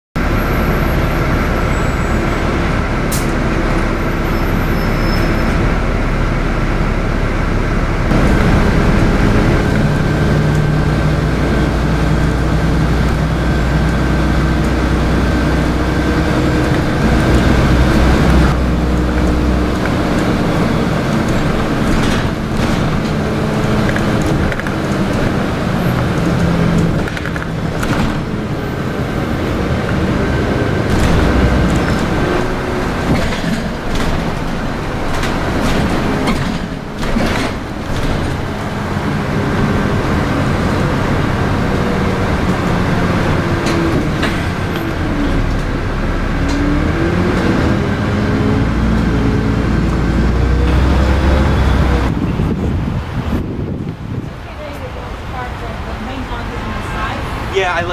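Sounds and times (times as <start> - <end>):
bus engine and road noise: 0.2 - 57.9.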